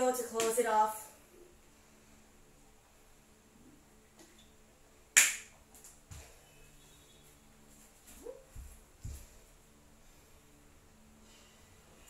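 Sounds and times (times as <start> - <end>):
soft thumps on exercise mat: 8.1 - 9.4.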